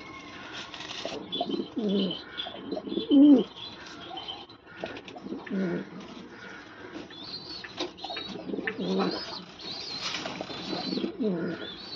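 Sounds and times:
pigeons cooing: 0.1s - 11.9s.

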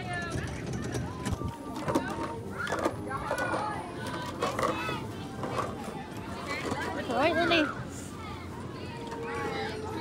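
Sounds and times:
adults and children chattering: 0.0s - 10.0s.

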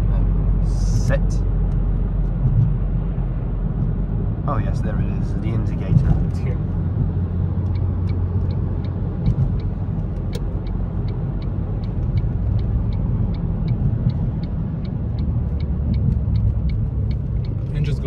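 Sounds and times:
car engine rumble: 0.0s - 18.0s
road noise: 0.0s - 18.0s
turn signal ticking: 0.3s - 18.0s.

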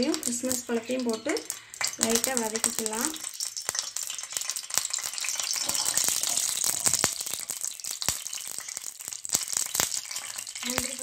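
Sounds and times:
crackles and pops: 0.0s - 11.0s
ghee sizzling in a pan: 0.0s - 11.0s.

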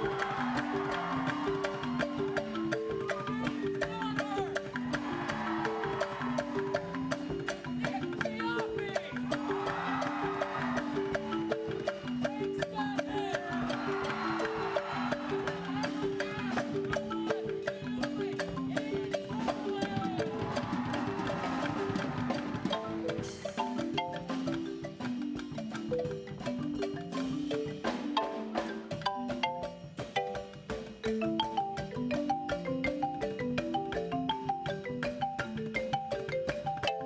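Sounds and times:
marimba melody: 0.0s - 37.0s
percussion beat: 0.0s - 37.0s.

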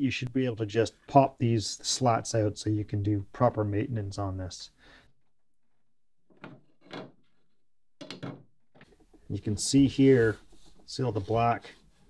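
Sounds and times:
wooden knocks and scrapes: 6.3s - 9.3s.

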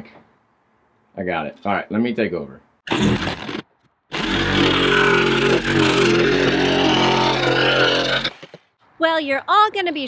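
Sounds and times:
reciprocating saw cutting wood: 2.9s - 8.7s.

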